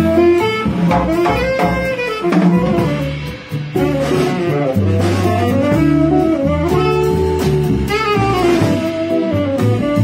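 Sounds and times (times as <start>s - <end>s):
drum kit with cymbals: 0.0s - 10.0s
electric guitar: 0.0s - 10.0s
saxophone melody: 0.0s - 10.0s
walking double bass: 0.0s - 10.0s.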